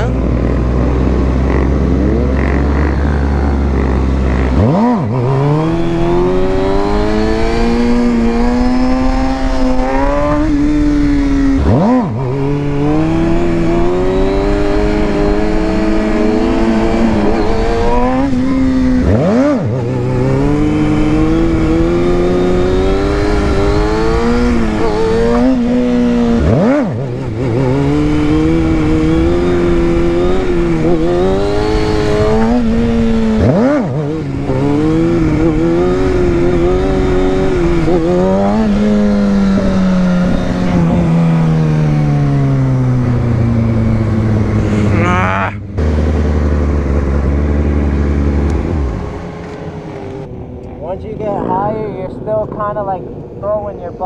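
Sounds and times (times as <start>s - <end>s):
motorcycle engine revving: 0.0s - 54.0s.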